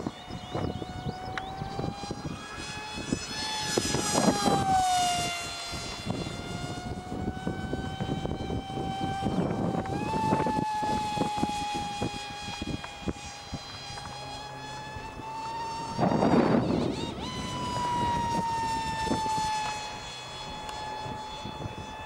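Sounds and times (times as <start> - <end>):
model plane motor whining: 0.0 - 22.0.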